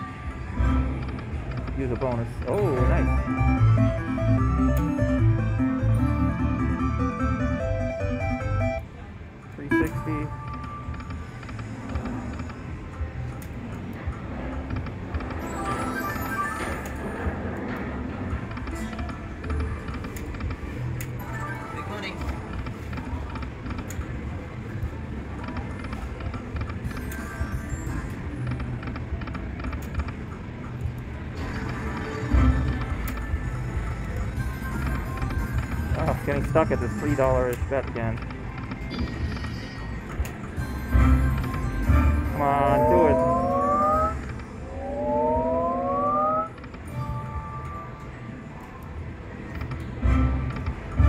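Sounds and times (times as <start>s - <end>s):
slot machine game music: 0.6s - 9.0s, 9.6s - 23.6s, 31.1s - 48.6s, 49.8s - 51.0s.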